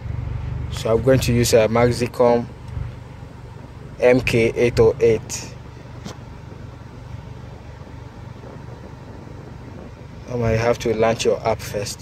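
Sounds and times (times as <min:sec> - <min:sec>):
car cabin mechanical hum: 0:00.0 - 0:12.0.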